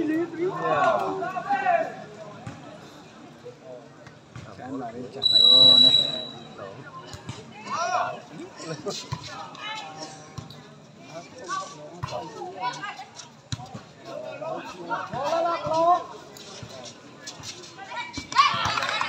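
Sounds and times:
referee's whistle blast: 0:05.2 - 0:06.6.

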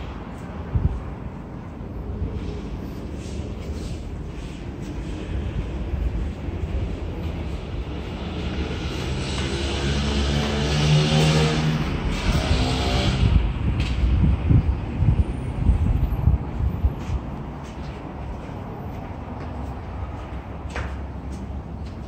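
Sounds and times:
steady low rumble: 0:00.0 - 0:10.8, 0:11.8 - 0:21.7
motor vehicle driving past: 0:06.8 - 0:13.7.

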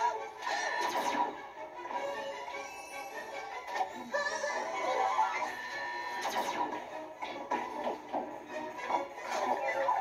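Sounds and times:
film music with singing from tv: 0:00.0 - 0:10.0.

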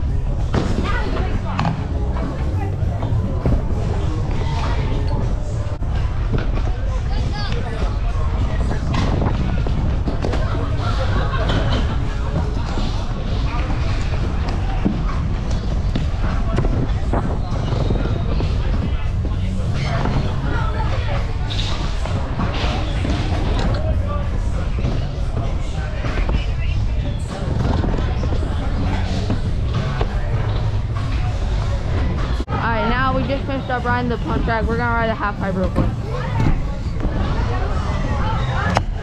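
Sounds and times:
indistinct voices: 0:00.0 - 0:39.0
background music: 0:18.4 - 0:39.0.

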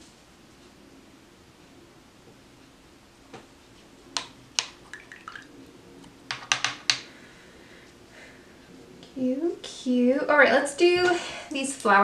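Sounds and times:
sharp hard clicks and taps: 0:06.3 - 0:07.0.

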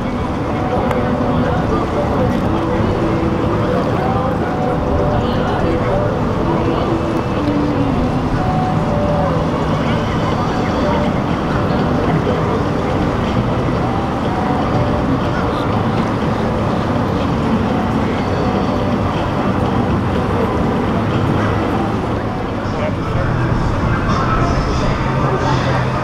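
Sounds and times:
boat engines rumbling: 0:00.0 - 0:26.0
distant voices: 0:00.0 - 0:26.0.

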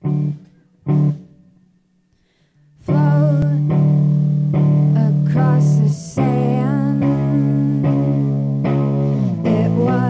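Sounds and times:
loud electric guitar chords: 0:00.0 - 0:01.5, 0:02.9 - 0:10.0.

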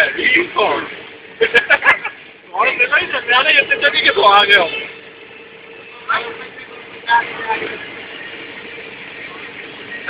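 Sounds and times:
engine and tyre hum: 0:00.0 - 0:10.0
voice: 0:02.5 - 0:04.9, 0:06.1 - 0:07.9.

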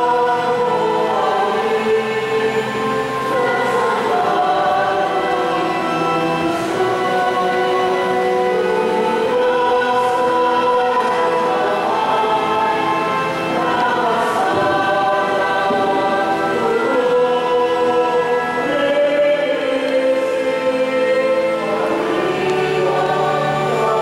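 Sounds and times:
choir singing a hymn: 0:00.0 - 0:24.0.

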